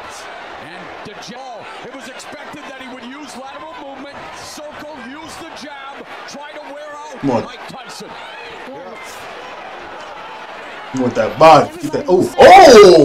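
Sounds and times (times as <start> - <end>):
arena crowd noise: 0.0 - 13.0
man commenting: 1.1 - 8.1.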